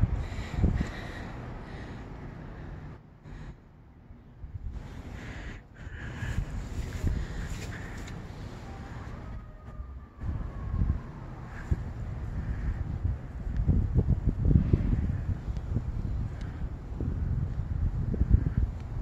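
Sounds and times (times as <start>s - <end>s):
wind buffeting microphone: 0.0s - 3.5s, 4.4s - 19.0s.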